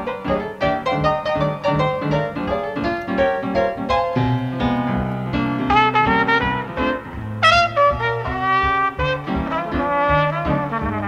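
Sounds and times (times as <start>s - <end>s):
jazz piano chords: 0.0s - 11.0s
brass horn melody: 4.5s - 11.0s.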